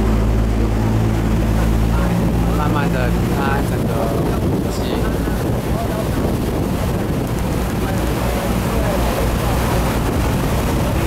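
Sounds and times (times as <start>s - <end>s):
boat engine humming: 0.0s - 11.0s
churning water wake: 0.0s - 11.0s
wind on microphone: 0.0s - 11.0s.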